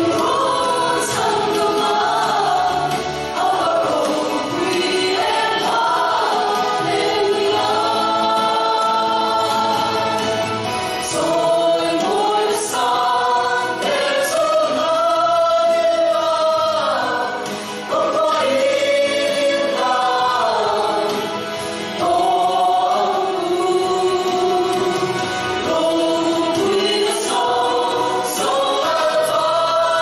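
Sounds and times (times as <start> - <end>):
group singing in harmony: 0.0 - 30.0.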